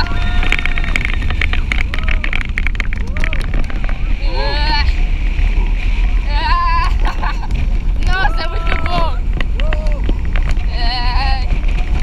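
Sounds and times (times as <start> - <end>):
roller coaster rumble and rattle: 0.0 - 12.0
wind buffeting microphone: 0.0 - 12.0.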